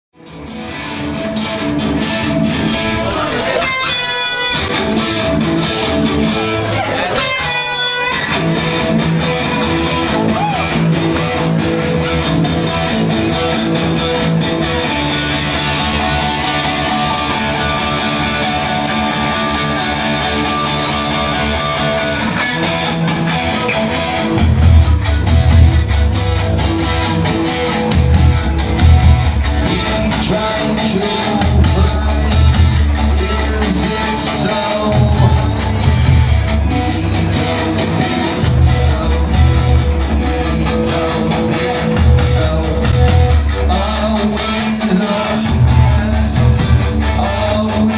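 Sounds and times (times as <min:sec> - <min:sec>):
electric guitar strummed chords: 0:00.2 - 0:47.9
bass and drums heavy beat: 0:01.0 - 0:47.9
steady drum beat: 0:24.2 - 0:43.8, 0:45.4 - 0:47.2.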